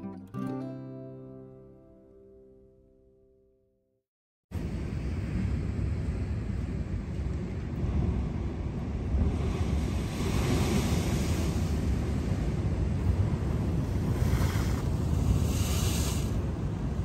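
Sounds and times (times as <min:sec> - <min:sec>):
wind rumbling on microphone: 0:04.5 - 0:17.0
ocean surf washing over rocks: 0:07.5 - 0:17.0.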